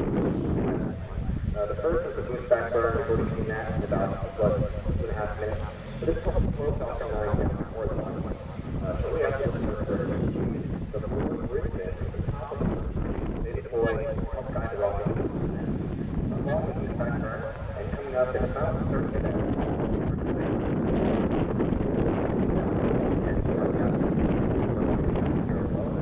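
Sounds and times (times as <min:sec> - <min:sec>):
wind noise on microphone: 0:00.0 - 0:26.0
people talking indistinctly: 0:00.8 - 0:20.4.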